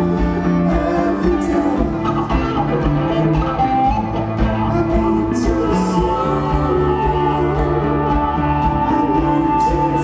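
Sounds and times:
acoustic guitar: 0.0s - 10.0s
lap steel guitar: 0.0s - 10.0s.

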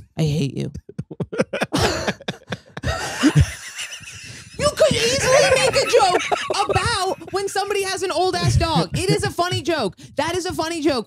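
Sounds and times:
people laughing: 1.0s - 9.6s.

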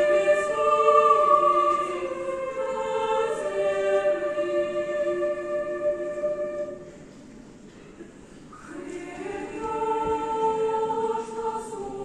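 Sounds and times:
choir singing: 0.0s - 7.0s, 8.6s - 12.0s.

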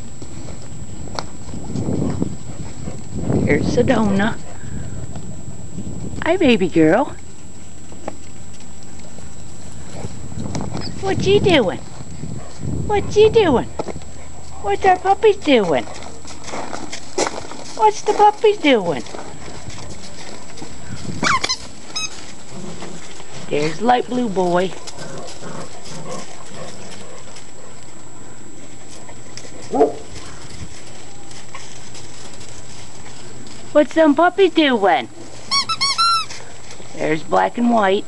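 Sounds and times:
puppy paws scrabbling on gravel: 0.0s - 6.2s, 7.0s - 11.1s, 13.7s - 38.0s
puppy high-pitched cry: 21.2s - 22.2s, 35.5s - 36.3s
thin squeak: 35.5s - 36.4s.

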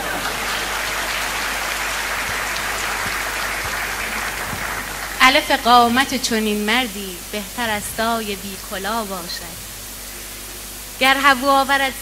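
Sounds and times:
audience applauding: 0.0s - 5.6s.

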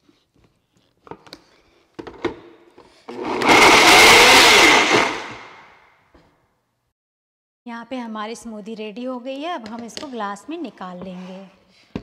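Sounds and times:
blender running with whine: 3.1s - 5.8s.

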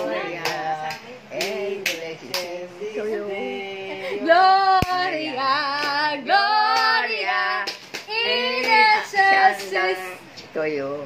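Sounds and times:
woman singing: 0.0s - 10.3s.

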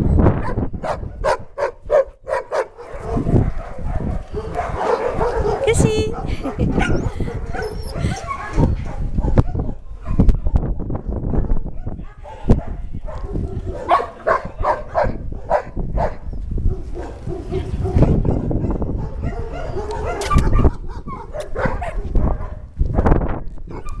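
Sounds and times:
dogs barking: 0.4s - 22.7s, 23.7s - 24.0s.

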